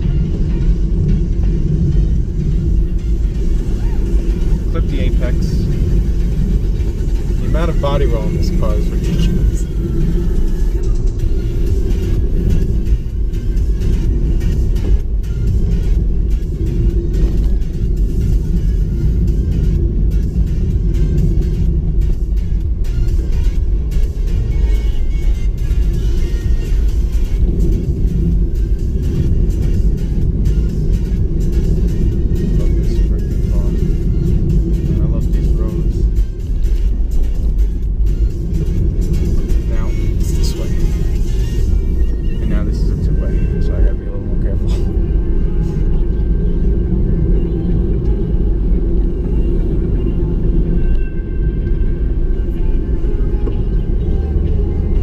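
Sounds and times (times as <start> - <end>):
car engine rumble: 0.0 - 55.0
tyres on the road: 0.0 - 55.0.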